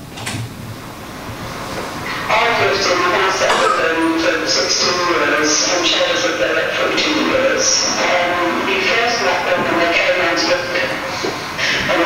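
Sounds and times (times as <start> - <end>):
low rumbling soundtrack over loudspeakers: 0.0 - 12.0.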